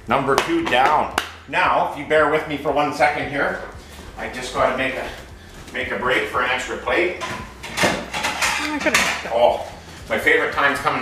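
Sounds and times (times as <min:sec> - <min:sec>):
plate knocking and clacking: 0:07.2 - 0:09.3.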